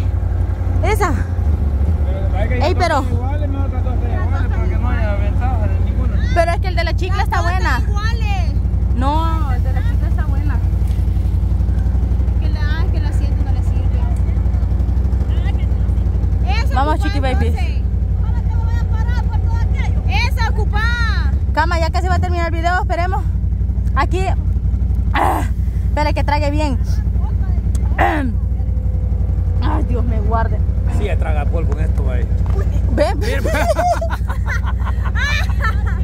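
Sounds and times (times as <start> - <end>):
steady low rumble: 0.0 - 36.0
people laughing: 32.1 - 36.0.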